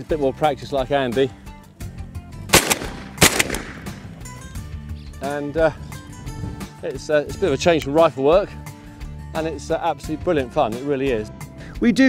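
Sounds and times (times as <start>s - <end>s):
shotgun shots with echo: 2.5s - 4.4s.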